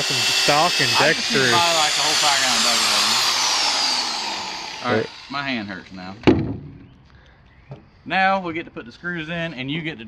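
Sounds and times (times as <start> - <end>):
power drill knocking on wood: 0.0 - 5.6.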